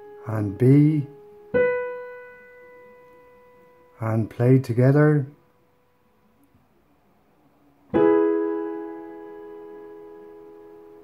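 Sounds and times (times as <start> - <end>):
piano note ringing: 0.0 - 4.3, 7.9 - 11.0.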